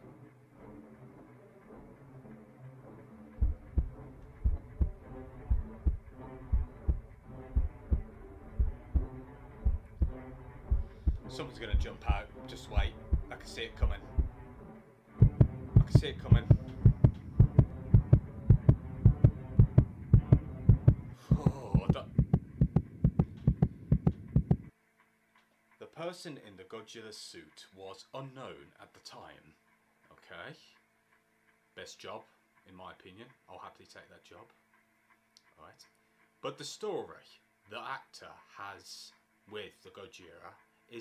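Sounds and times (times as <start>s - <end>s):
low slow sustained music: 0.0s - 25.0s
low steady drone: 1.7s - 24.7s
heartbeat thumps: 3.4s - 14.4s, 15.2s - 24.7s.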